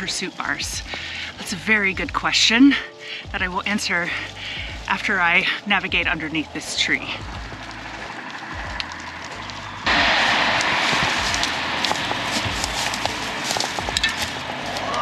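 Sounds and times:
bicycle tyres crunching leaves: 0.0 - 15.0
low bumps: 0.0 - 15.0.

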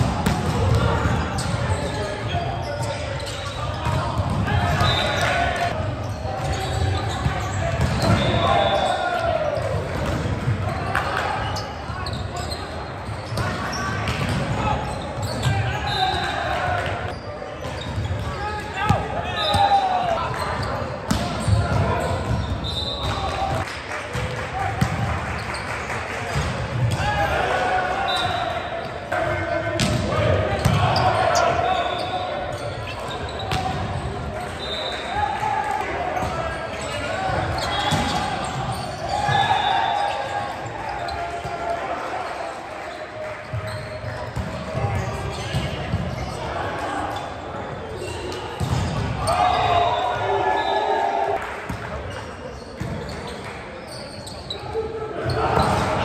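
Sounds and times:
volleyball hitting and bouncing: 0.0 - 1.6, 7.2 - 8.8, 21.1 - 25.2
players shouting: 0.0 - 17.2, 18.2 - 22.2, 26.9 - 43.0, 44.7 - 51.4, 54.6 - 56.0.

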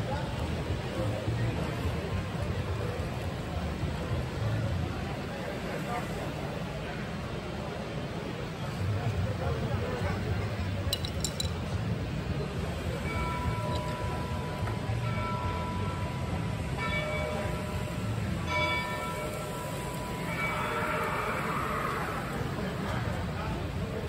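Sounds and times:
exhibition hall hum: 0.0 - 24.0.

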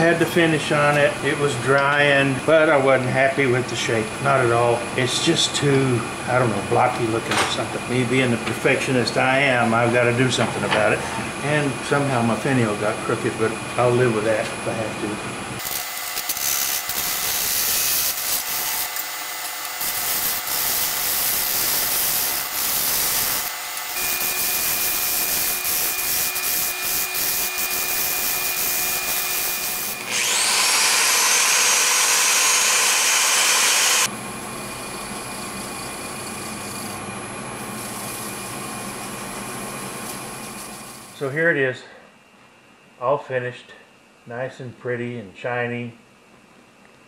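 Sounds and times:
wood lathe tool scraping: 15.6 - 34.1, 35.2 - 37.0, 37.6 - 39.2.

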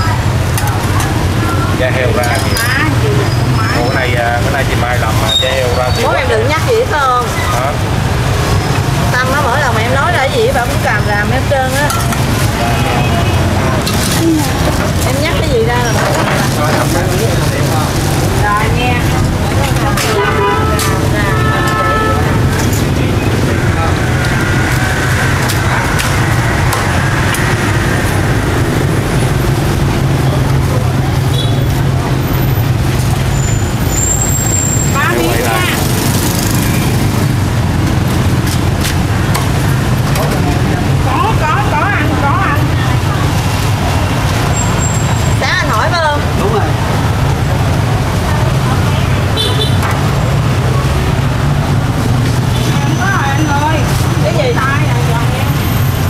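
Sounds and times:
street traffic rumble: 0.0 - 56.0
voices in background: 0.0 - 56.0.

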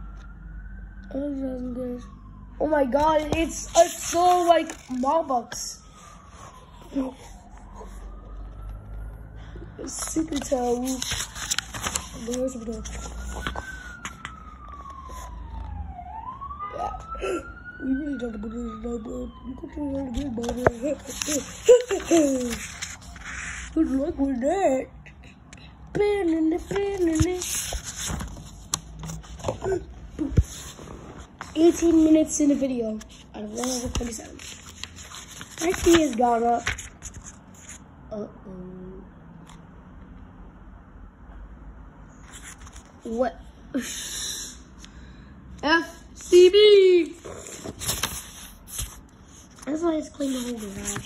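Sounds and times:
emergency siren wailing: 0.0 - 25.2.

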